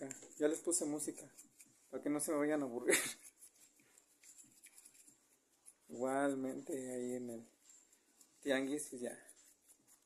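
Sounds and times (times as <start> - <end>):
brush sweeping over toy car: 0.3 - 10.0.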